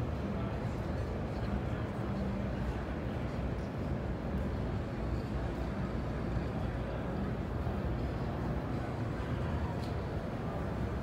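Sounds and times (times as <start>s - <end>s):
low rumble of exhibition hall: 0.0s - 11.0s.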